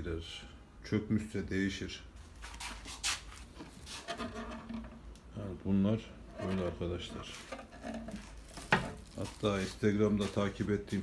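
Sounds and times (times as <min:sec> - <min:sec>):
lute handling rub: 0:02.4 - 0:05.1, 0:06.2 - 0:11.0.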